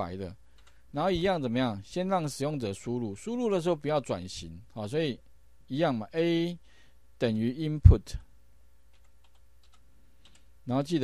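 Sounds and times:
faint keyboard keystrokes: 8.9s - 10.5s.

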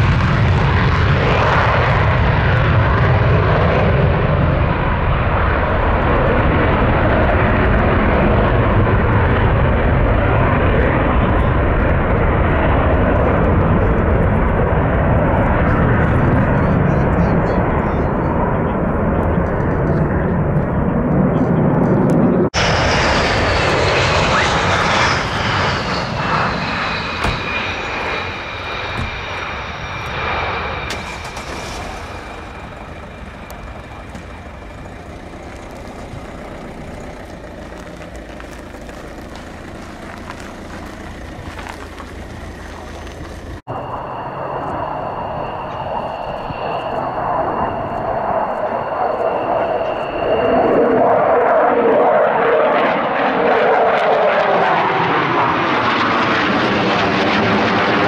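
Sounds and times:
high jet engine whine: 0.0s - 58.0s
jet taking off with loud rumble: 0.0s - 58.0s.

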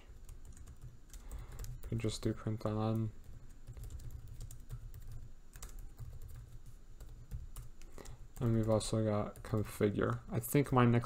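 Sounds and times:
computer keyboard typing: 0.2s - 10.8s.

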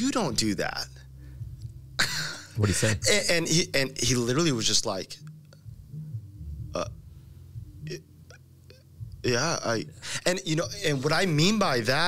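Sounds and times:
man's low throat sound: 5.7s - 9.3s.

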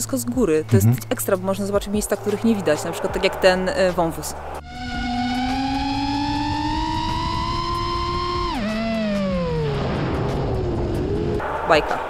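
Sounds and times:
quadcopter motors whining: 4.6s - 9.7s.

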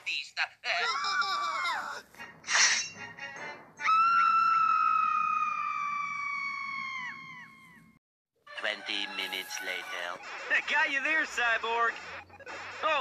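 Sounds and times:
cartoon characters screaming: 0.7s - 2.0s, 3.8s - 7.6s.

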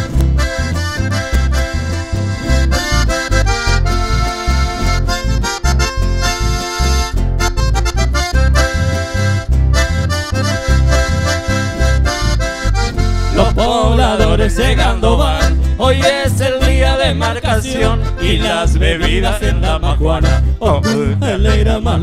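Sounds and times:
button accordion melody: 0.0s - 22.0s
electric bass line: 0.0s - 22.0s.

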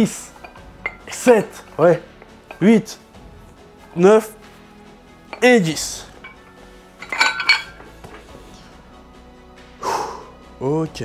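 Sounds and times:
metal dumbbell plates clinking: 0.1s - 2.7s, 5.2s - 8.3s.

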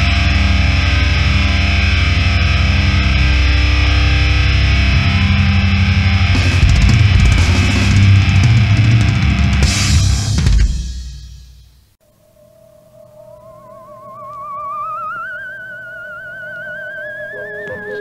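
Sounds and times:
bass guitar: 0.0s - 11.9s
distorted electric guitars: 0.0s - 11.9s, 13.4s - 18.0s
drum kit: 5.9s - 11.9s
cymbal crashes: 6.1s - 11.9s.

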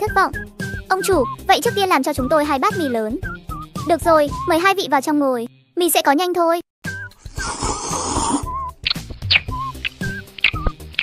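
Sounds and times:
light cartoon background music: 0.0s - 11.0s.

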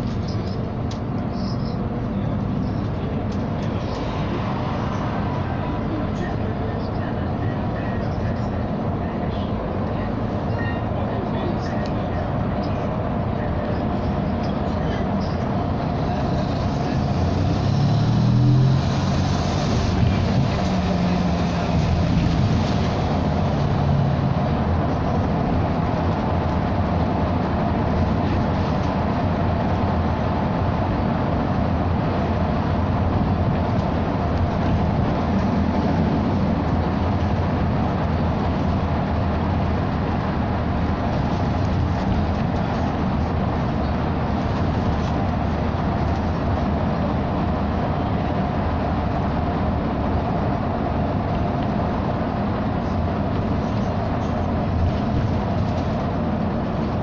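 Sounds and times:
bus engine and road noise: 0.0s - 57.0s.

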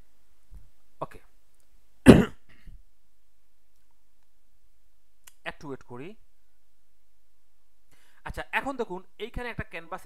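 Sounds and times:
person coughing: 2.0s - 2.7s.

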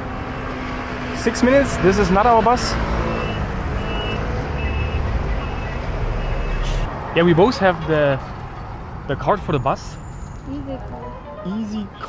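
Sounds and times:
bus engine rumbling: 0.0s - 12.0s
street traffic: 0.0s - 12.0s.

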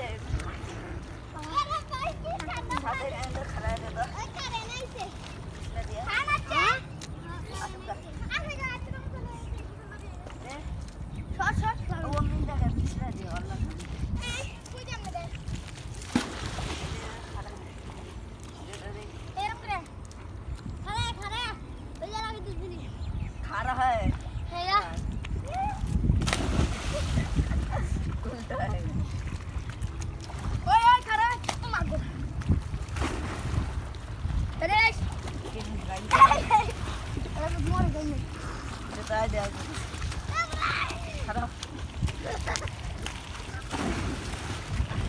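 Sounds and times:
wind rumbling on microphone: 0.0s - 19.1s, 20.3s - 45.0s
river water splashing: 0.0s - 22.4s, 24.2s - 45.0s
brief splash: 15.9s - 17.4s, 26.2s - 27.6s, 32.9s - 33.8s, 42.3s - 45.0s.

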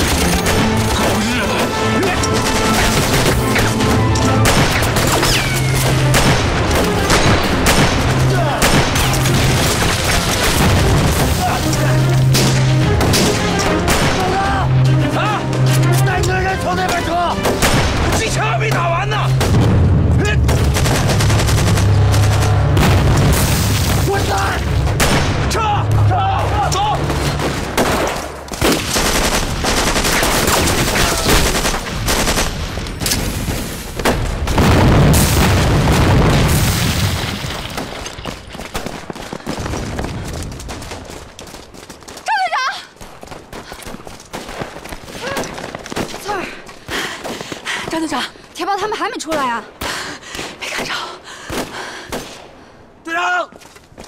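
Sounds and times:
rifle and machine-gun fire: 0.0s - 11.4s, 16.9s - 18.3s, 19.4s - 24.1s, 27.4s - 37.1s
booming explosions: 0.0s - 14.4s, 16.9s - 41.1s
men shouting: 13.4s - 17.4s.

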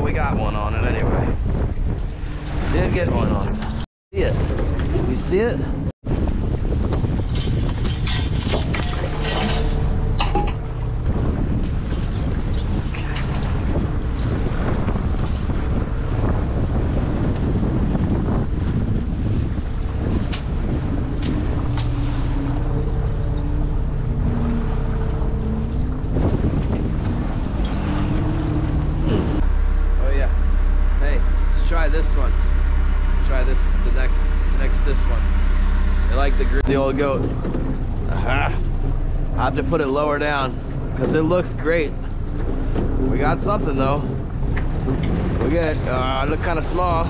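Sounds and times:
choppy water against hull: 0.0s - 47.0s
wind buffeting microphone: 0.0s - 47.0s
boat engine droning: 0.1s - 47.0s.

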